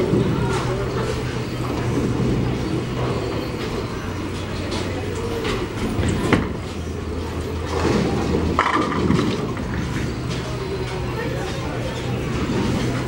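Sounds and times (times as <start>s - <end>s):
bowling balls rolling: 0.0s - 13.0s.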